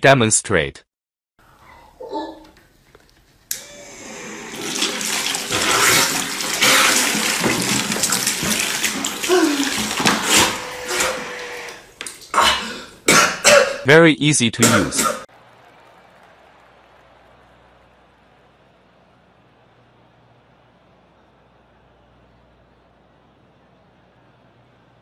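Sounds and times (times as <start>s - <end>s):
faint motor hum: 1.5s - 5.7s
water rushing and gurgling: 4.4s - 12.7s.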